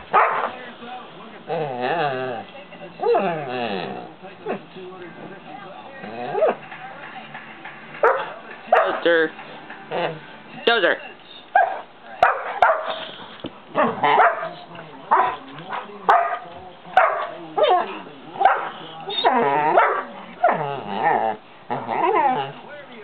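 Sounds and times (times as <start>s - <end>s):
puppy barking: 0.1s - 0.6s, 8.0s - 9.0s, 11.6s - 13.0s, 13.8s - 20.7s.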